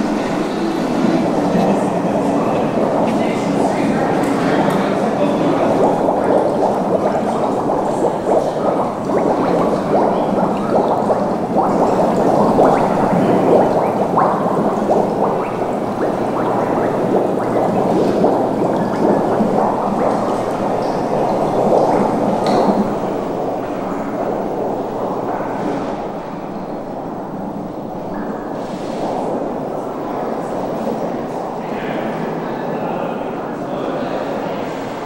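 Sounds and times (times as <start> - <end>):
mud bubbling and gurgling: 0.0 - 35.0.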